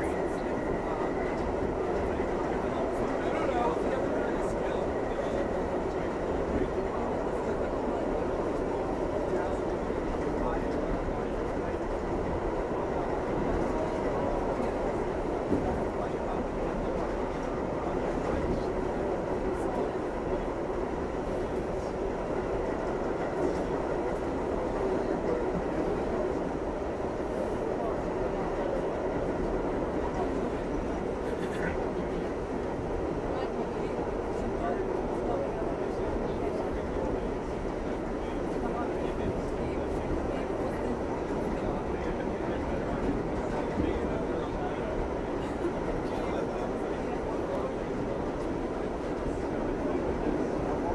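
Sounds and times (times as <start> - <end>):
subway car rumble on rails: 0.0 - 50.9.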